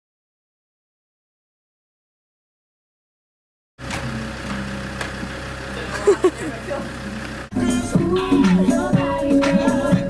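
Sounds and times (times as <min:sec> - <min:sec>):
vehicle engine idling: 0:03.8 - 0:10.0
music: 0:07.5 - 0:10.0.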